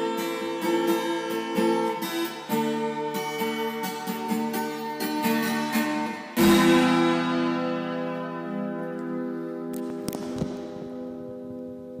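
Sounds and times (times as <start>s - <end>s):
acoustic guitar chord ringing: 0.0s - 12.0s.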